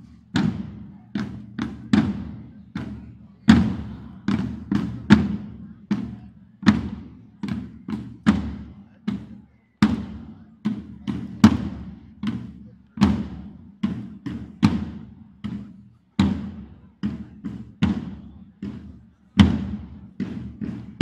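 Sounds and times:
ringing drum beats: 0.0 - 21.0.

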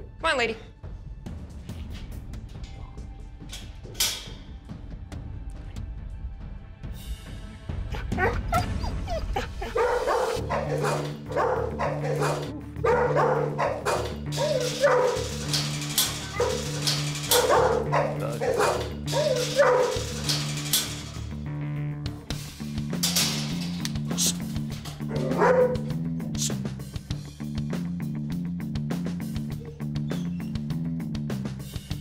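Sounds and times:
dog barking excitedly: 7.9 - 21.2, 24.0 - 26.6
background music with a beat: 24.0 - 32.0.

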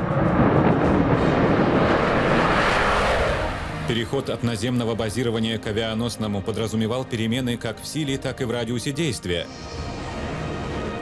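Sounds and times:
jet engines roaring: 0.0 - 5.1, 9.5 - 11.0
background music: 0.0 - 11.0.

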